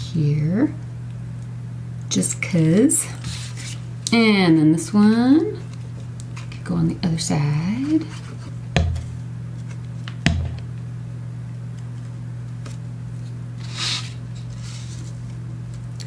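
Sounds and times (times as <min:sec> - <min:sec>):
low electrical hum: 0:00.0 - 0:16.0
plastic bottle knocking on table: 0:10.3 - 0:10.6
paper rustle: 0:12.6 - 0:15.4.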